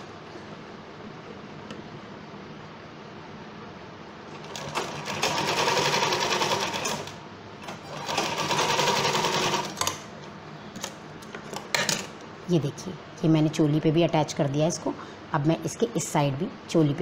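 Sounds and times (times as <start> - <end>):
sewing machine stitching fabric: 4.3 - 10.0.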